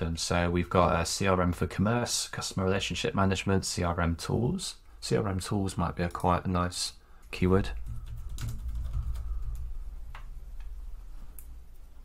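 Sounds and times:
low steady hum: 0:07.0 - 0:12.0.

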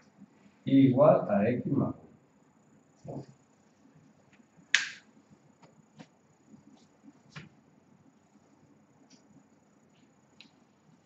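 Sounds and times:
sharp snap: 0:04.7 - 0:05.1.

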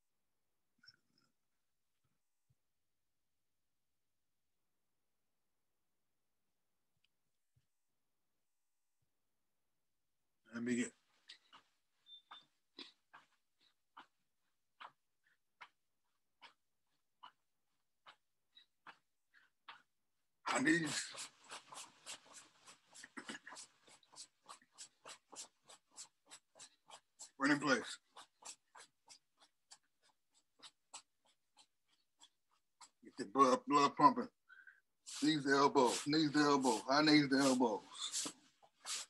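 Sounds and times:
footsteps scuffing: 0:11.0 - 0:16.6, 0:35.1 - 0:39.0
person breathing: 0:34.4 - 0:36.1, 0:37.9 - 0:39.0.

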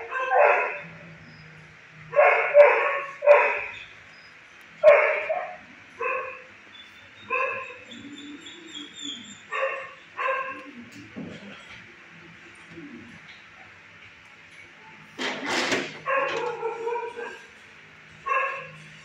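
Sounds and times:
dog barking: 0:00.0 - 0:00.9, 0:02.1 - 0:03.8, 0:04.8 - 0:06.5, 0:07.2 - 0:08.4, 0:09.5 - 0:10.7, 0:16.0 - 0:17.5, 0:18.3 - 0:18.8.

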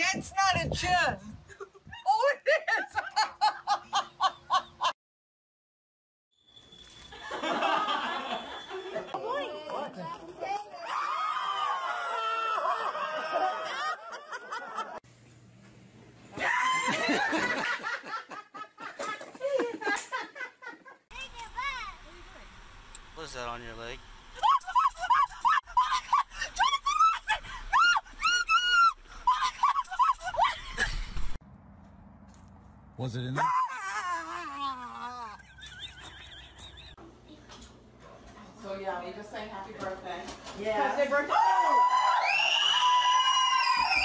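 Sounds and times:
group of people laughing: 0:01.5 - 0:04.9, 0:07.2 - 0:09.2, 0:11.6 - 0:15.0, 0:16.5 - 0:21.0, 0:24.4 - 0:31.2, 0:33.4 - 0:37.0
low hum: 0:30.5 - 0:33.4
person screaming: 0:33.4 - 0:35.4.

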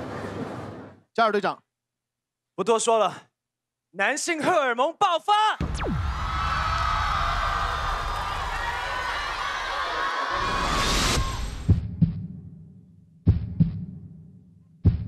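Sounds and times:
audience cheering: 0:05.6 - 0:11.8.

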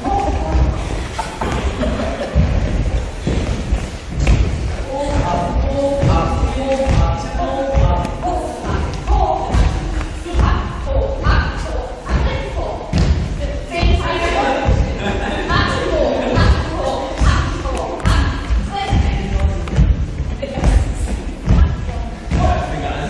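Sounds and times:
person talking: 0:04.8 - 0:19.8.

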